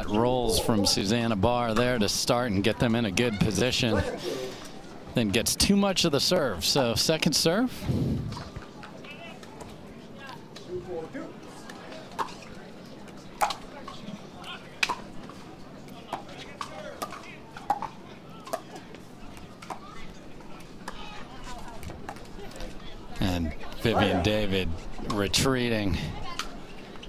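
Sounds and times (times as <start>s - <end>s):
murmur of crowd voices: 0.0s - 27.0s.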